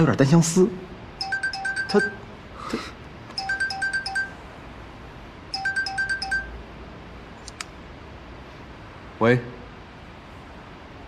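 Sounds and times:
phone ringtone beeps: 1.2s - 2.3s, 3.3s - 4.4s, 5.5s - 6.6s.

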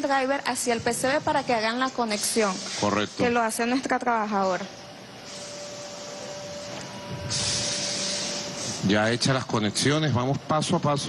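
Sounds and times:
steady background hiss: 0.0s - 11.0s
high-pitched hiss: 1.8s - 3.8s, 5.2s - 10.0s.

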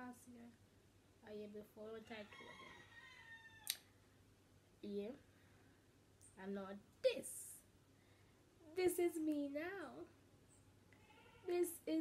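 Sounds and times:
high-pitched animal call: 11.0s - 11.6s.

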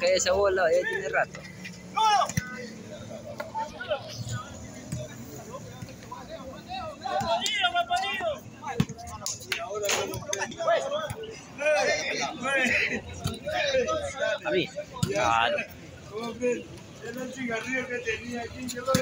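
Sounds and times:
men calling out: 1.7s - 4.4s, 9.6s - 16.4s.

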